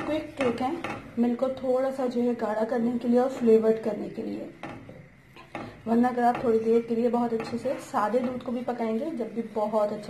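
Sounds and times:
spatula knocking against pan: 0:00.0 - 0:01.6, 0:02.9 - 0:08.8
spatula stirring milk in saucepan: 0:00.0 - 0:10.0.

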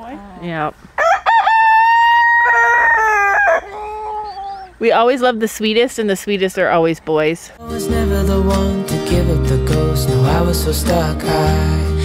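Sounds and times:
rooster crowing: 0:01.0 - 0:04.7.

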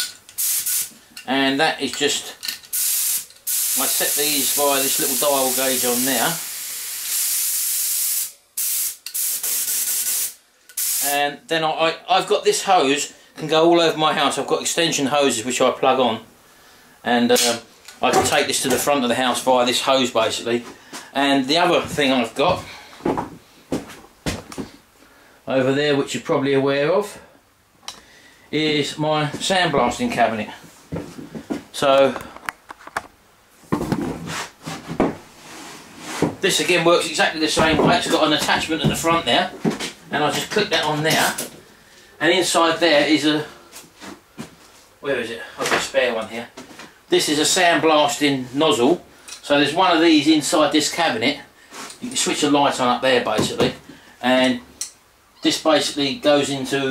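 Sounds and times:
compressed air hissing from spray gun: 0:00.4 - 0:01.0, 0:02.7 - 0:11.1
soft rustle: 0:33.6 - 0:36.4.

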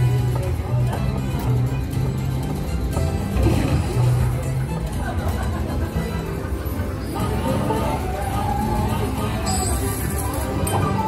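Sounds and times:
slot machine game music: 0:00.0 - 0:11.0.

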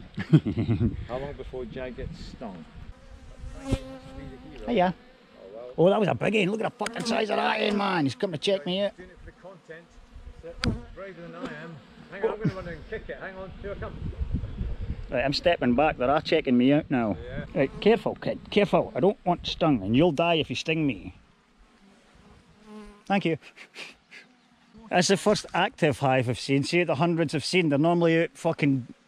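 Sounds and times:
bees buzzing: 0:02.5 - 0:15.4, 0:20.8 - 0:23.1
sharp knock: 0:10.6 - 0:11.6.

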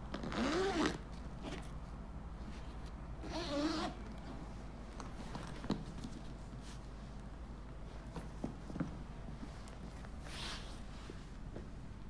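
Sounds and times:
zipper being pulled: 0:00.1 - 0:01.7, 0:03.2 - 0:04.0.

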